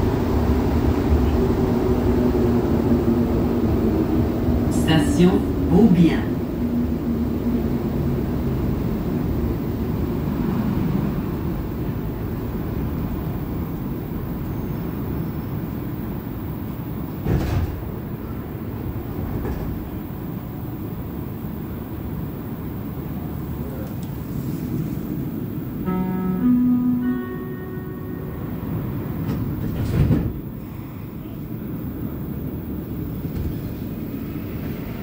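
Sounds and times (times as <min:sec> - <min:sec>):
metro train cabin rumble and hiss: 0:00.0 - 0:35.0.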